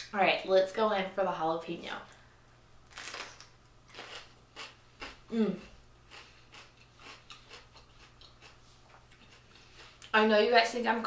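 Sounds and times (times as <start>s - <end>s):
crisp chewing crunches: 2.9s - 5.2s, 6.1s - 10.1s.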